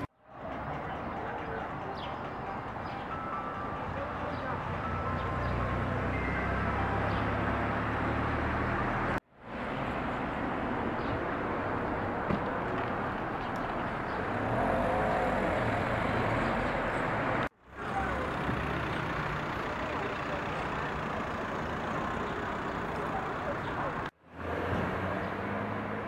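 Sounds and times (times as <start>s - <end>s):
traffic noise: 0.0s - 26.0s.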